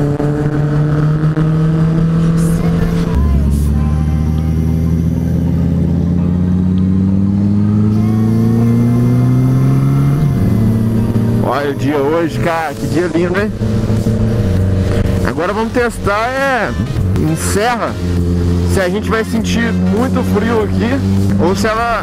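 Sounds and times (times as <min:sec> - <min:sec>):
motorcycle engine accelerating: 0:00.0 - 0:22.0.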